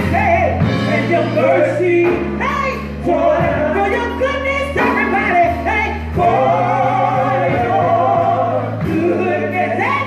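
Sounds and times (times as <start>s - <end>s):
gospel singing: 0.0s - 10.0s
instrumental accompaniment: 0.0s - 10.0s
steady bass notes: 0.0s - 10.0s.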